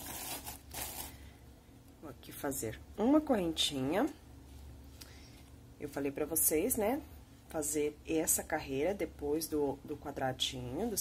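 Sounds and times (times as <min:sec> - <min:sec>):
yarn rustling with crochet hook: 0:00.0 - 0:01.2.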